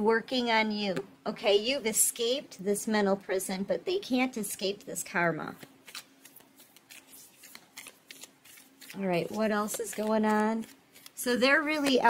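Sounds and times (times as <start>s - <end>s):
cards being shuffled: 5.5s - 12.0s.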